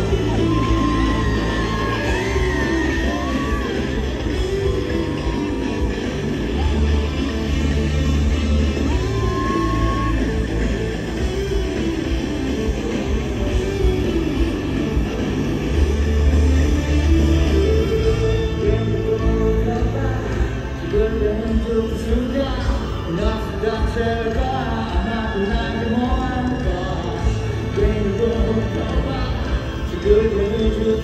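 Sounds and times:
live band music over loudspeakers: 0.0 - 31.0.

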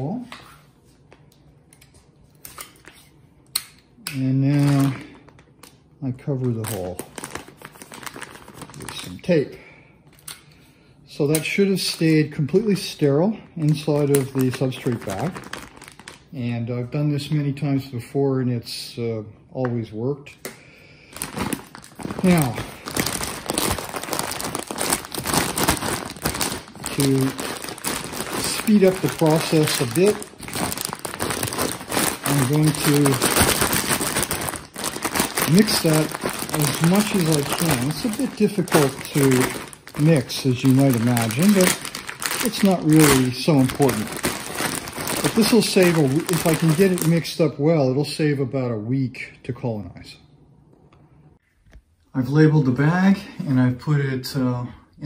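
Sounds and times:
plastic bag crinkling: 4.2 - 9.4, 11.5 - 16.5, 21.0 - 47.4.

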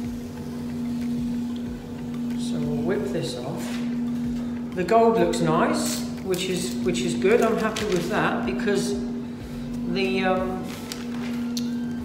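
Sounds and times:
ventilation fan humming: 0.0 - 12.0
masking tape being peeled: 7.4 - 8.2, 10.6 - 11.8.

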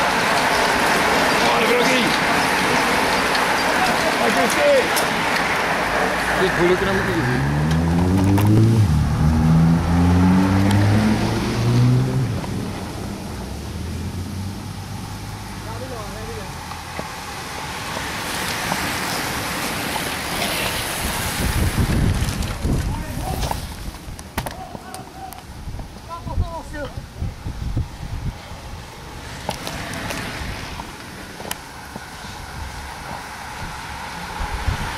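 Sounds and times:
car accelerating past: 0.0 - 15.7
bicycles rushing past: 0.0 - 24.2, 27.7 - 34.9
wind on microphone: 18.3 - 24.2, 25.5 - 31.0, 32.0 - 34.9.

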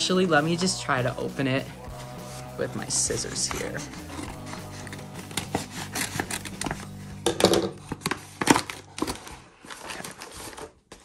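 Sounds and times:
paper envelope rustling: 1.9 - 7.2, 7.8 - 11.0
scissors snipping paper: 2.9 - 6.9.

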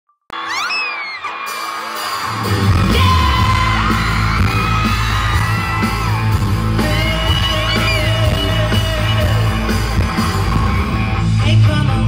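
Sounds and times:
crowd screaming: 0.3 - 11.2
live rock band through pa: 0.3 - 12.0.

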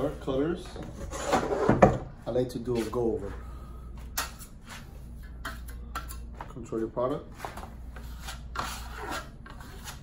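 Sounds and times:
low steady hum: 0.0 - 10.0
trowel scraping against spatula: 7.4 - 10.0.

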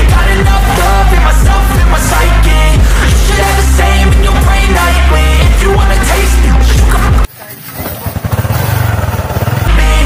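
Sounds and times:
background music: 0.0 - 7.3, 8.8 - 10.0
small motorcycle engine revving: 7.7 - 10.0.

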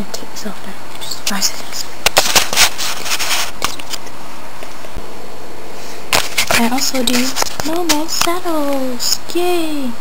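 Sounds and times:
background hiss: 0.0 - 10.0
plastic toy rustle: 1.3 - 4.1, 6.1 - 8.4.

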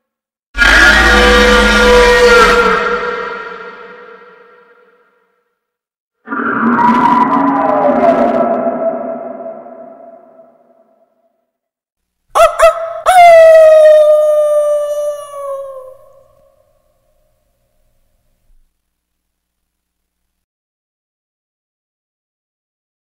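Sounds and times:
long tone sliding down: 6.3 - 11.0
reverberant many-toned swell: 6.3 - 11.0.

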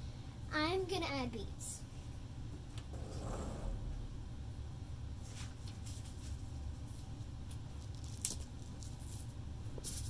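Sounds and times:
low background rumble: 0.0 - 5.2.

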